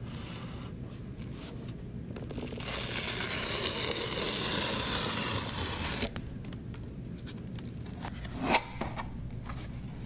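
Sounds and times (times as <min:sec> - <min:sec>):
cardboard ripping open: 0:02.3 - 0:06.1.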